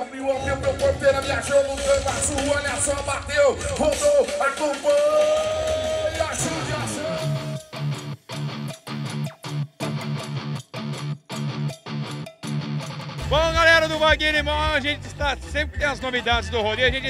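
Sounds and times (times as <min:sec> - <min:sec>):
man talking: 0:00.0 - 0:05.4, 0:06.0 - 0:07.6, 0:13.2 - 0:17.0
electric guitar riff: 0:00.4 - 0:14.4
man shouting: 0:03.2 - 0:07.8, 0:13.2 - 0:16.4.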